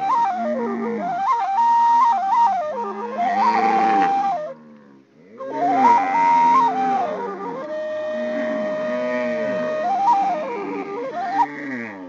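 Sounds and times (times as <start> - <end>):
flute melody: 0.0 - 12.0.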